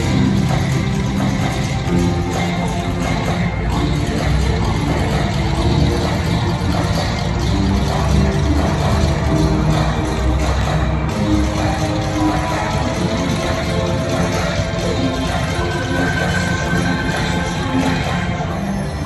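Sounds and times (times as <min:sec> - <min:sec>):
loud music over sound system: 0:00.0 - 0:19.0.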